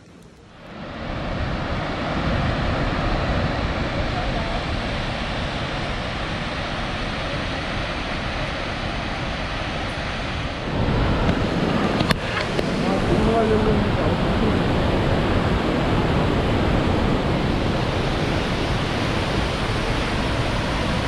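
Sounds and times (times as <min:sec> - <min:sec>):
wind on microphone: 0:00.6 - 0:21.0
waterfall rushing: 0:00.7 - 0:21.0.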